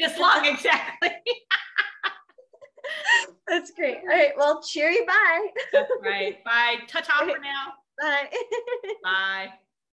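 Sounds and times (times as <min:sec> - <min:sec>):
women laughing: 0:00.8 - 0:03.5, 0:08.3 - 0:09.1.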